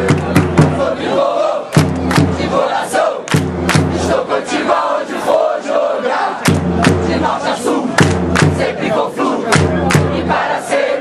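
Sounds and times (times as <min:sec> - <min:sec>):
crowd chanting and singing: 0:00.0 - 0:11.0.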